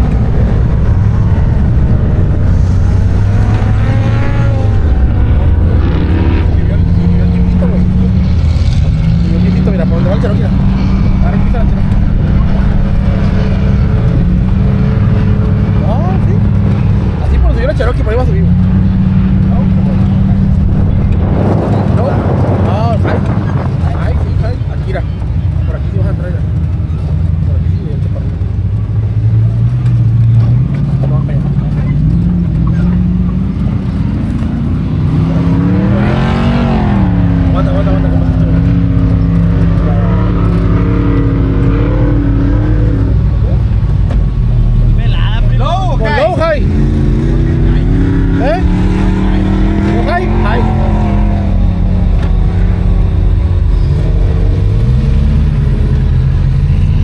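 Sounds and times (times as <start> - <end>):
truck engine revving: 0.0 - 57.0
wind on microphone: 19.3 - 24.8.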